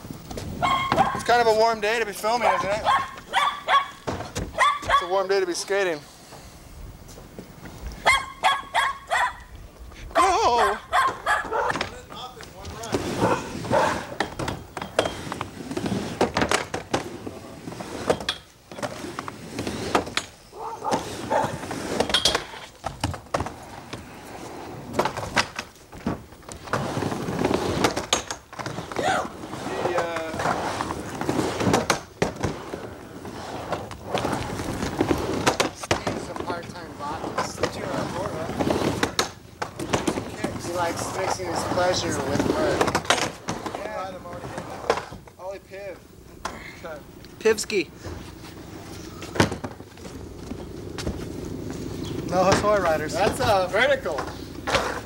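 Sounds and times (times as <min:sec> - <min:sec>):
skateboard wheels rolling on ramp: 0:00.0 - 0:55.0.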